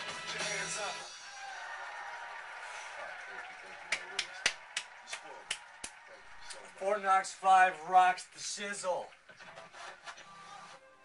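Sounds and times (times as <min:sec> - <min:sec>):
hand claps: 0:01.8 - 0:06.6.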